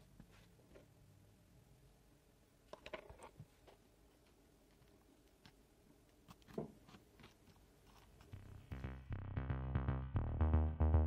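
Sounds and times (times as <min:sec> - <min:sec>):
electronic music with a beat: 0:08.4 - 0:11.0.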